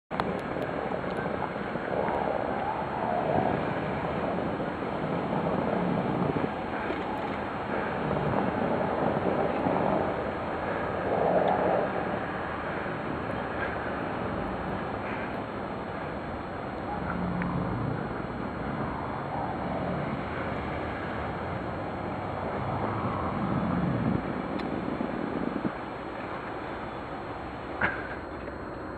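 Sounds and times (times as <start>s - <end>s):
car engine: 0.1s - 28.9s
tyres on snow: 0.1s - 28.9s
wind noise on microphone: 0.1s - 28.9s.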